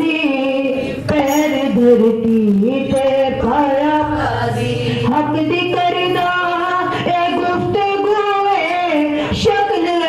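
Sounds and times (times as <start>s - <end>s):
women singing devotional chant: 0.0s - 10.0s.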